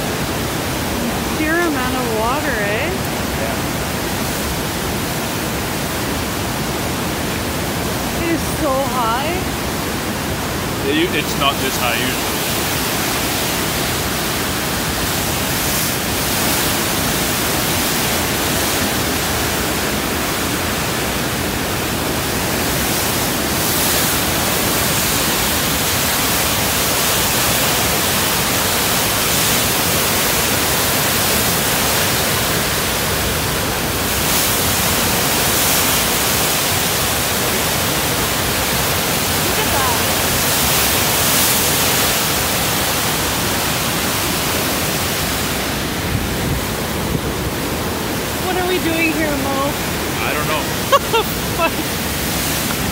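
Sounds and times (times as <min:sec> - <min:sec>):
river rushing through rapids: 0:00.0 - 0:52.9.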